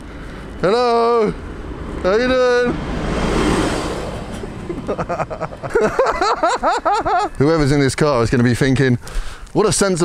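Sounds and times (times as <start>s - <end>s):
minibus driving past: 0.0s - 7.4s
person laughing: 4.4s - 7.4s.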